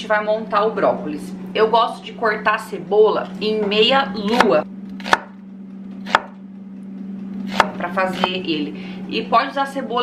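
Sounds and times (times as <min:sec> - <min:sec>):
steady low hum: 0:00.0 - 0:10.0
knife chopping on wooden board: 0:04.3 - 0:05.4, 0:06.0 - 0:06.4, 0:07.5 - 0:08.4.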